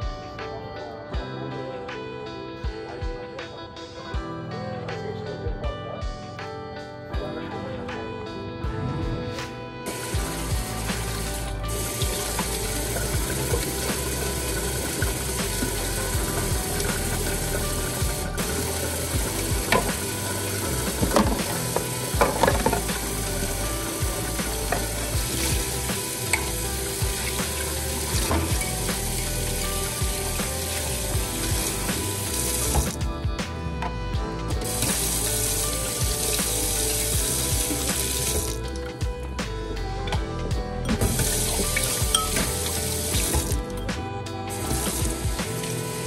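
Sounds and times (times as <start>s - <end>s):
faucet running into steel sink: 9.9s - 33.0s, 34.6s - 38.7s, 41.1s - 43.6s, 44.6s - 46.0s.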